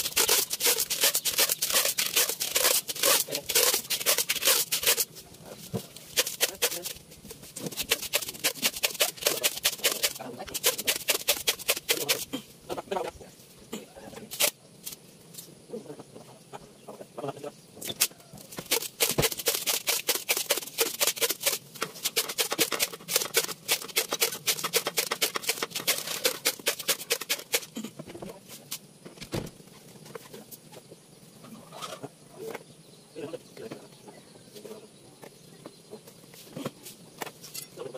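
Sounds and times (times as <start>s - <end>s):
tin cans and bamboo tubes clicking: 0.0s - 5.1s, 5.9s - 7.0s, 7.6s - 12.3s, 17.8s - 27.7s.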